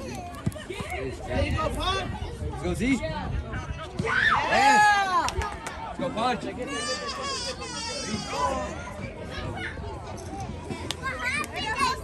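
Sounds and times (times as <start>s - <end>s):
open-air background noise: 0.0s - 12.0s.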